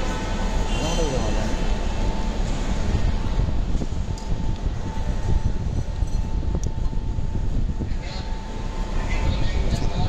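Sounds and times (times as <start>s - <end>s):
rumble of traffic and crowd: 0.0s - 10.0s.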